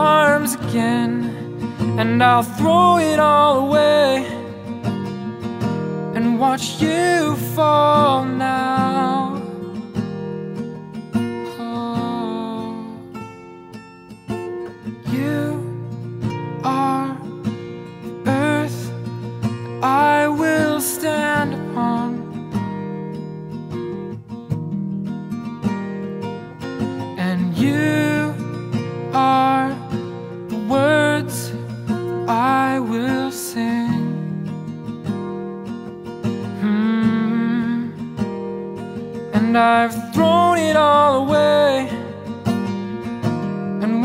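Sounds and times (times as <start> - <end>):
wordless vocal melody: 0.0 - 5.4
acoustic guitar chords: 0.0 - 44.0.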